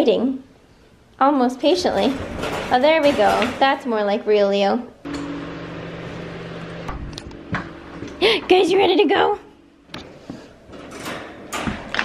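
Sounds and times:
low machine hum: 5.0 - 10.9.

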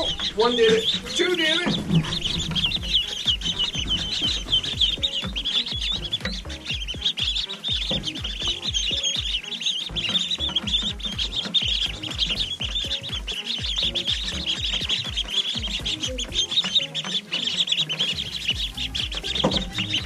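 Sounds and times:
soft low thumps: 0.0 - 16.9, 18.2 - 20.0
ducklings peeping: 0.0 - 20.0.

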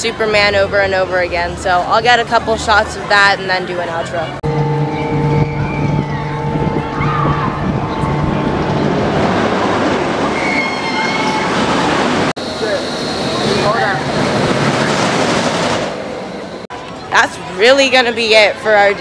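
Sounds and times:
roller coaster rushing roar: 0.1 - 16.7
riders screaming: 10.2 - 12.1.

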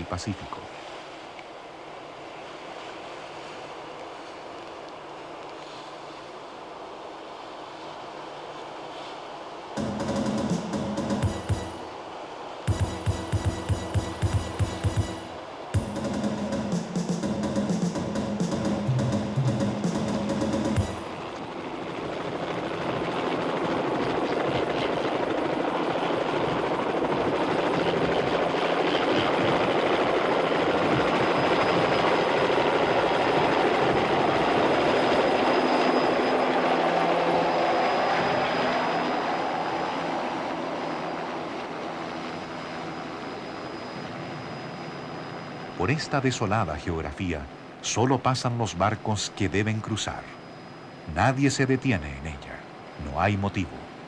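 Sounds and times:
faint high whine: 0.0 - 54.0
helicopter rotor and turbine: 0.0 - 54.0.

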